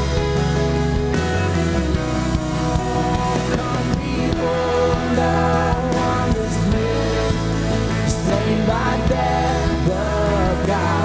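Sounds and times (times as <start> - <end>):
acoustic guitars: 0.0 - 11.0
drum kit steady beat: 0.0 - 11.0
electric bass: 0.0 - 11.0.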